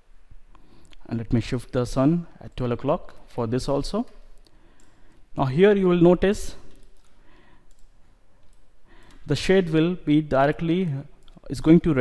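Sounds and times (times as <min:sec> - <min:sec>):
low room noise: 0:00.0 - 0:12.0
computer mouse clicks: 0:04.1 - 0:05.3, 0:06.6 - 0:09.3.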